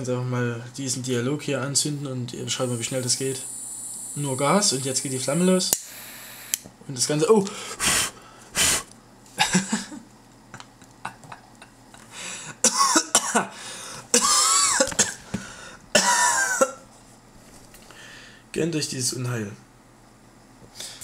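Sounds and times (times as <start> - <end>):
short sharp puffs of breath: 7.5 - 8.9
man coughing: 12.5 - 15.2, 16.0 - 16.8.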